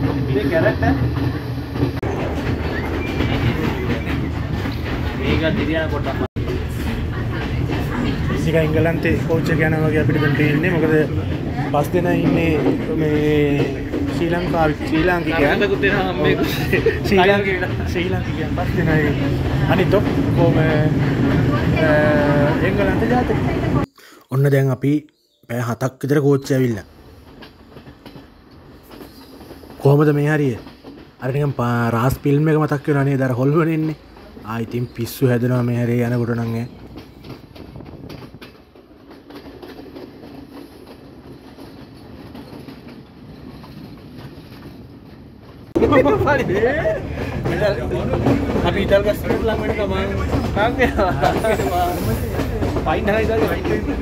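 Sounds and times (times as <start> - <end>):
men talking: 0.0 - 1.1, 5.2 - 6.3, 8.4 - 23.4, 24.2 - 26.9, 29.8 - 36.8, 45.7 - 54.0
train rumbling on track: 0.0 - 24.0, 26.1 - 54.0.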